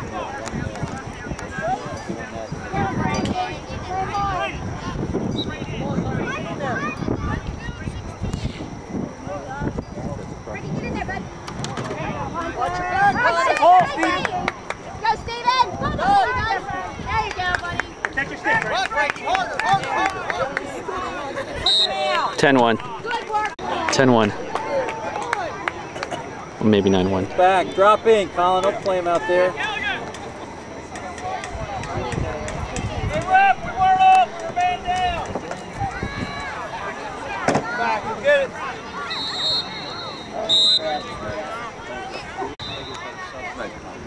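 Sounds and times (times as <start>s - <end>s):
voices calling out: 0.0s - 44.0s
high steady whistle: 5.3s - 5.8s, 21.6s - 22.3s, 39.0s - 41.4s, 42.4s - 43.3s
people shouting: 32.8s - 35.2s.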